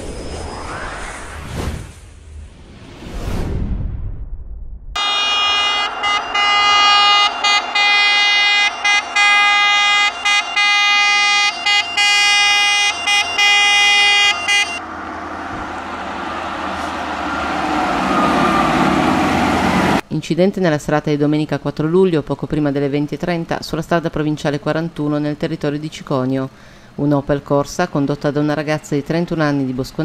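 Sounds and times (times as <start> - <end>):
fire engine siren horn: 5.0 - 20.0
fire engine engine and road noise: 5.0 - 20.1, 24.1 - 30.0.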